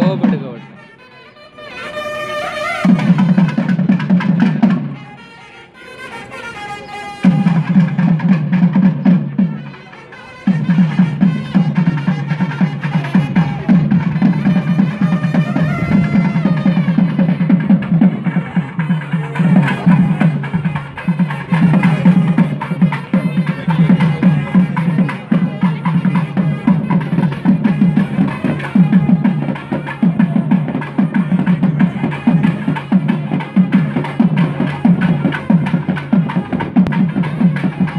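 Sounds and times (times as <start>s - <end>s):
fast loud live drumming: 0.0s - 0.6s, 2.8s - 5.0s, 7.2s - 37.9s.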